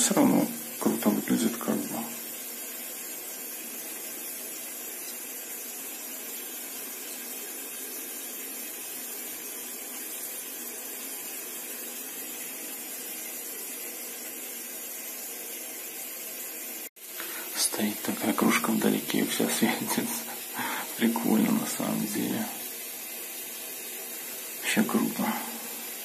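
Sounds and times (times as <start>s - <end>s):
steady hiss: 0.0s - 26.0s.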